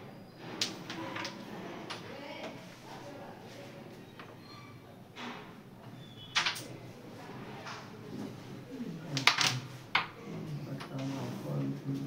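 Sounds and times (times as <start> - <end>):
wooden carrom pieces clacking: 6.4 - 6.7, 9.1 - 10.2
low voices murmuring: 6.7 - 12.0.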